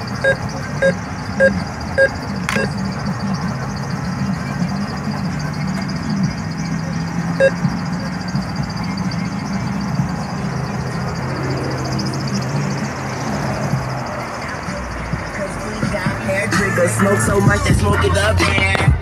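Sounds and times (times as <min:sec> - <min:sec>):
short electronic beep: 0:00.0 - 0:03.3, 0:07.4 - 0:09.1
outdoor traffic noise: 0:00.0 - 0:19.0
vehicle engine humming: 0:00.0 - 0:19.0.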